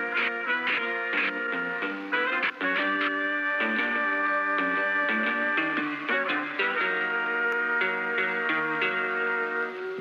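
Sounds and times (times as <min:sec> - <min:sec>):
plucked-string music: 0:00.0 - 0:10.0.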